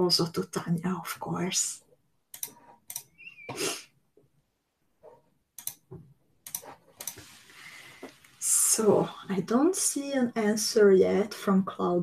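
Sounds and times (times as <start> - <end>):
sharp burst of breath: 3.4 - 3.9
faint clicks: 5.6 - 5.8.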